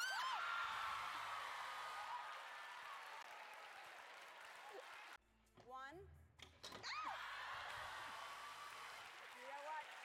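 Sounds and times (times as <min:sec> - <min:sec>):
audience screaming and cheering: 0:00.0 - 0:04.6, 0:07.0 - 0:09.1.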